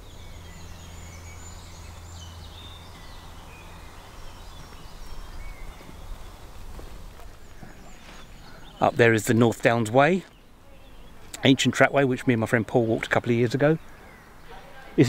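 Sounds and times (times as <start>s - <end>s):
birds chirping and whistling: 0.0s - 15.0s
low steady hum: 0.0s - 15.0s.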